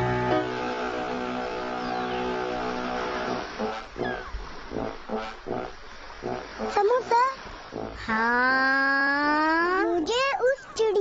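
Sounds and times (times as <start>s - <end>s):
ship's horn low blast: 0.0s - 6.8s.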